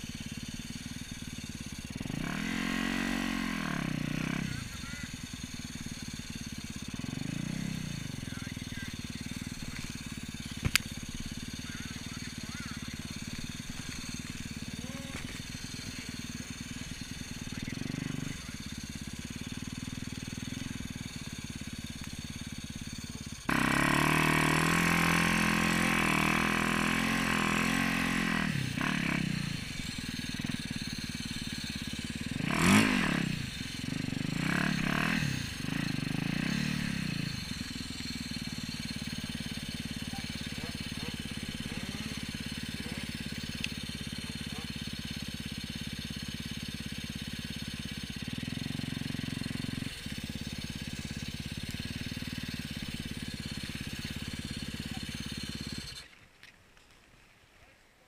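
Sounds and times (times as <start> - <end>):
dirt bike engine revving: 0.0 - 56.2.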